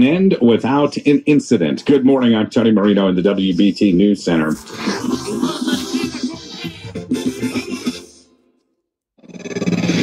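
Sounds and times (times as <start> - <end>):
radio station id music: 3.2 - 8.5
radio broadcast: 3.4 - 8.2.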